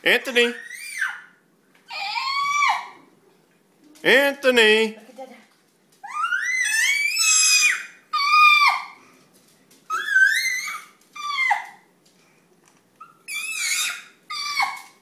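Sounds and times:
baby squealing happily: 0.5 - 1.3, 1.9 - 3.0, 6.0 - 9.0, 9.9 - 11.8, 13.0 - 15.0.

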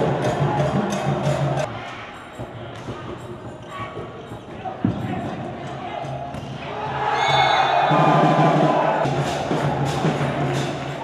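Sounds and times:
volleyball rally in a hall: 0.0 - 11.0
drums: 2.4 - 11.0
crowd chanting: 4.8 - 11.0.

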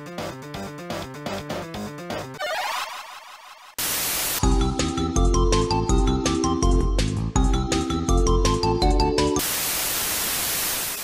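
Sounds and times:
television static hiss: 3.8 - 4.4, 9.4 - 11.0.

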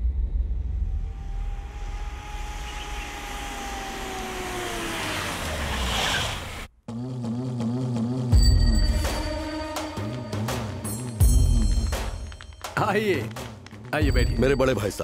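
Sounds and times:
slowly falling tone: 0.0 - 5.8
vehicle engine rumble: 0.0 - 6.7
music: 6.9 - 15.0.

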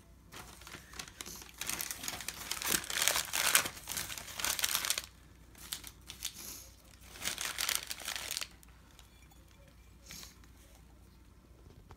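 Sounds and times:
wrapping paper crumpling: 0.3 - 9.0.

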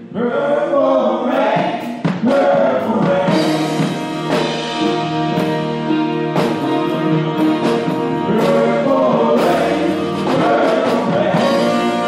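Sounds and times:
gospel choir singing: 0.0 - 12.0
instrumental accompaniment: 1.3 - 12.0.

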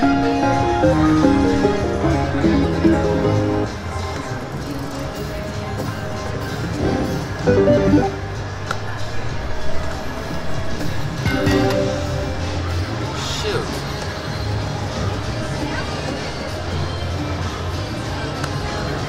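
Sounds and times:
slot machine game music: 0.3 - 3.8, 6.7 - 8.6, 11.3 - 12.4.

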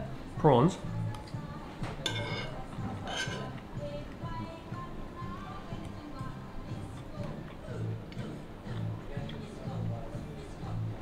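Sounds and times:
soft music with pulsing beat: 0.0 - 11.0
cutlery clinking on a dish: 1.8 - 3.6.

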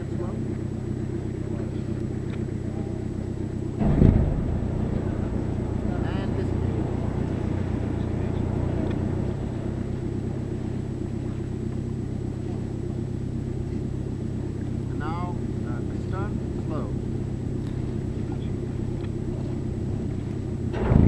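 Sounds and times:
submarine engine droning: 0.0 - 21.0
short loud low burst: 3.8 - 10.5.

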